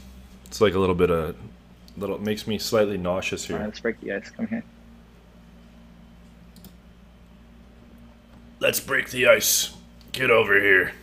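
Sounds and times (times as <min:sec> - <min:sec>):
low electrical hum: 0:00.0 - 0:11.0
computer mouse clicks: 0:06.2 - 0:06.8.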